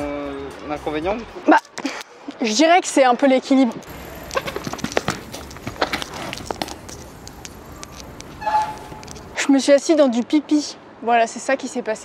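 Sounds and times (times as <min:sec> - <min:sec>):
inline skates on pavement: 0:03.8 - 0:09.5.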